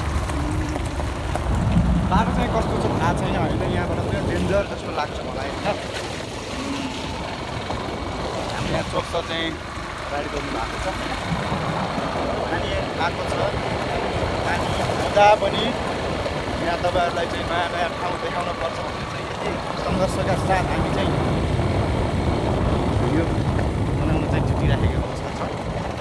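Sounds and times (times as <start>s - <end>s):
wind rumble on microphone: 0.0s - 26.0s.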